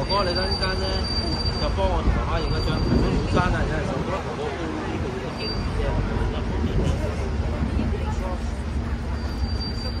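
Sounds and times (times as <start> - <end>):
street noise rumble: 0.0 - 10.0.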